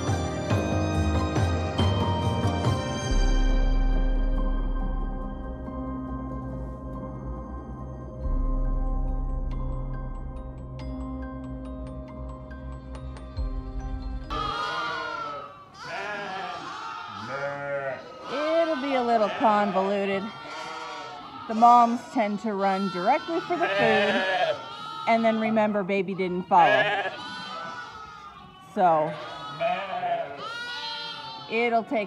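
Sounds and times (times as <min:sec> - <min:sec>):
sheep bleating: 0:14.3 - 0:32.0.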